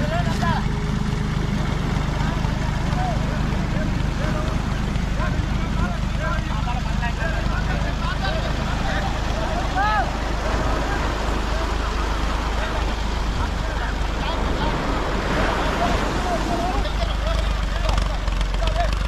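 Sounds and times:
low engine rumble: 0.0 - 19.0
men calling and shouting: 0.0 - 19.0.

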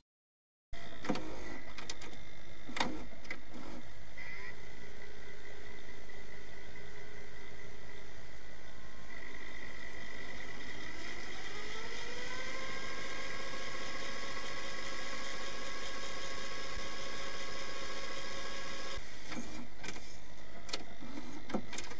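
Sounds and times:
small motor whining: 0.8 - 21.9
sharp mechanical clicks: 18.9 - 21.9.

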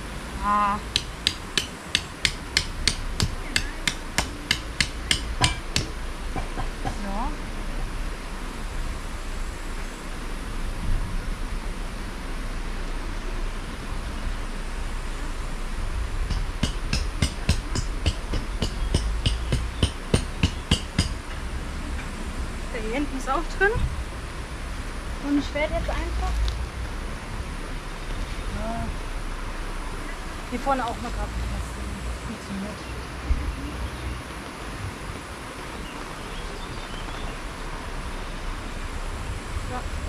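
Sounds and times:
hatchet hammering tent pegs: 0.9 - 7.0, 16.3 - 21.4.

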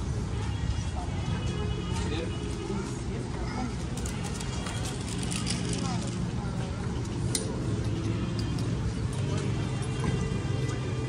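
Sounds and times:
low city hum: 0.0 - 11.0
people talking: 0.4 - 11.0.

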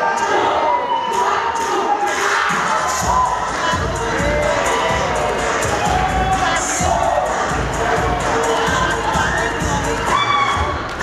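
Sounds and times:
audience cheering and shouting: 0.0 - 11.0
loud dance music: 0.0 - 11.0
heavy bass beat: 1.5 - 11.0.

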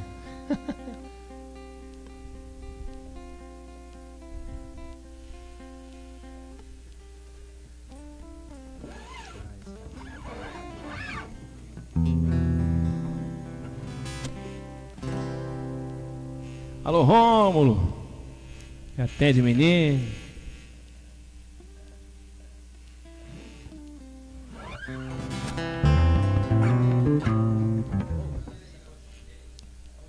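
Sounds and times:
slow plucked guitar music: 0.0 - 19.0, 23.0 - 28.8.

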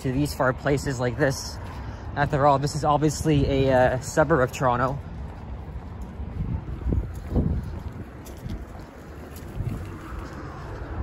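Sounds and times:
low hum of road traffic: 0.0 - 11.0
wind buffeting microphone: 0.0 - 11.0.

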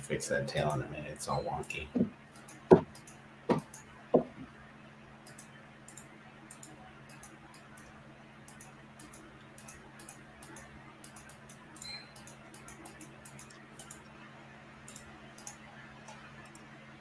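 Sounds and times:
faint low hum: 0.0 - 17.0
computer mouse clicks: 5.2 - 7.9, 8.5 - 14.1, 14.9 - 16.7.

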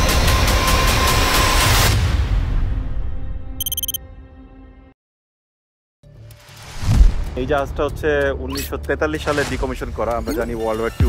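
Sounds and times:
held tones: 3.6 - 4.0.

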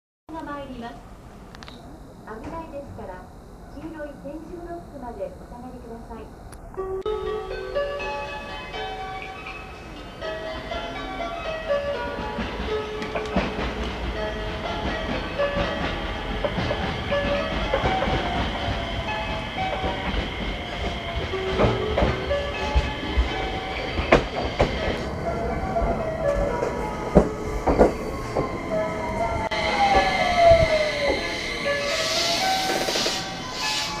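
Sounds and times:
train motor whine: 1.0 - 34.0
train rumble: 2.3 - 34.0
wheels clicking over rail joints: 12.3 - 14.2
electronic chime melody: 28.2 - 32.8.

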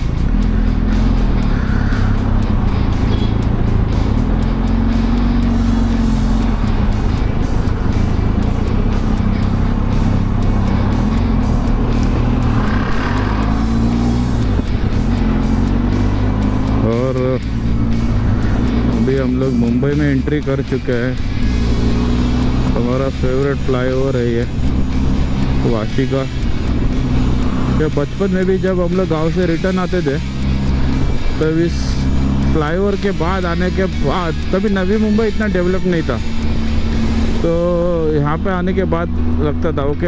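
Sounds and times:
motorcycle engine revving: 0.0 - 40.0.

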